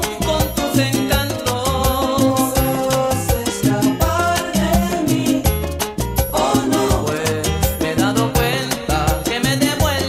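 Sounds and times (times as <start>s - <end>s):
instrumental salsa music: 0.0s - 10.0s.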